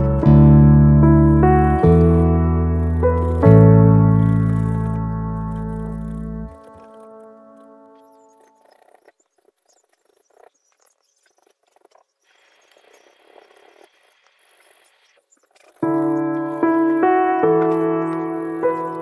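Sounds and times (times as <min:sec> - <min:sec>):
piano music: 0:00.0 - 0:08.6, 0:15.8 - 0:19.0
paintbrush scratching on canvas: 0:02.0 - 0:10.7.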